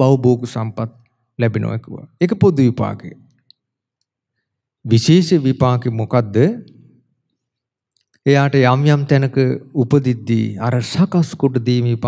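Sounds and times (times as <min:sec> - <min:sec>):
man speaking: 0:00.0 - 0:03.3, 0:04.8 - 0:06.9, 0:08.2 - 0:12.0.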